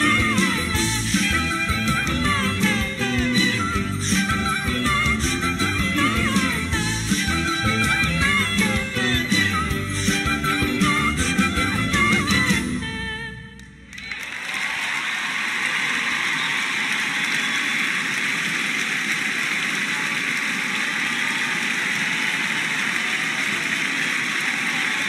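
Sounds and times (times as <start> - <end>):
audience applauding: 13.9 - 25.0.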